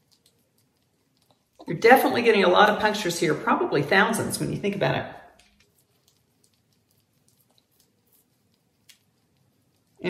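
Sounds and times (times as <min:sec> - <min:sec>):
derma roller ticking on skin: 0:00.0 - 0:03.2, 0:05.3 - 0:10.0.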